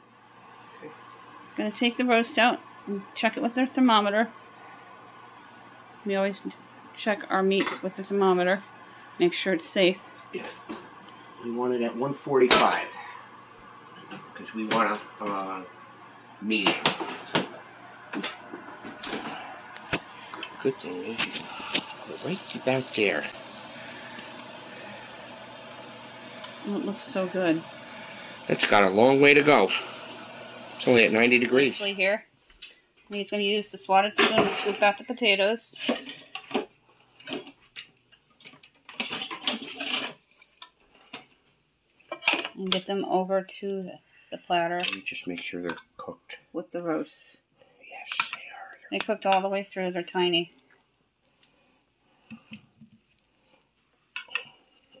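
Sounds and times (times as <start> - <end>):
faint hum: 0.0 - 35.9, 42.3 - 55.0.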